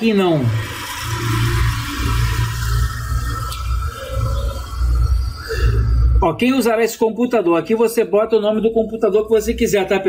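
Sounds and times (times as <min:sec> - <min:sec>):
low hum: 0:00.4 - 0:06.6
soft ambient synth music: 0:00.9 - 0:06.4.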